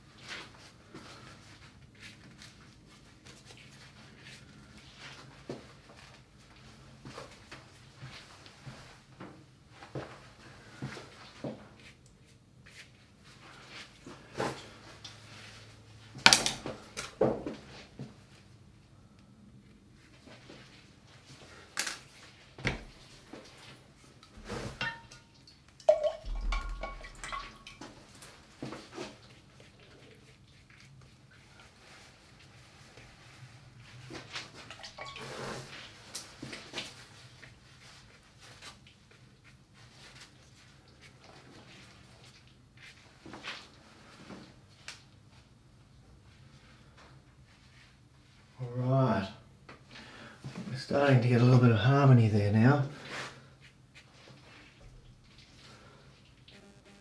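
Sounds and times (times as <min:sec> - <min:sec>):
brush rinsed in water: 0:24.4 - 0:28.2, 0:34.6 - 0:35.6
glass clink: 0:24.8 - 0:27.8
brushes and jars knocking: 0:25.8 - 0:27.6.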